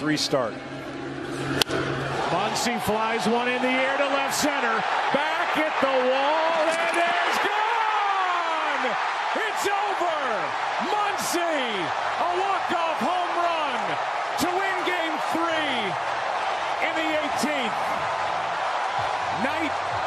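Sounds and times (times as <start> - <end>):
stadium crowd roaring: 0.6 - 20.0
fans whooping and yelling: 2.0 - 20.0.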